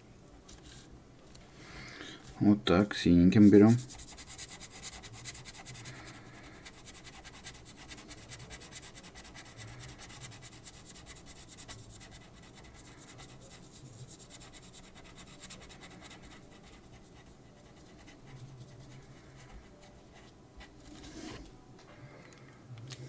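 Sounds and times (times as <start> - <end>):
felt-tip marker scratching on paper: 3.4 - 21.4.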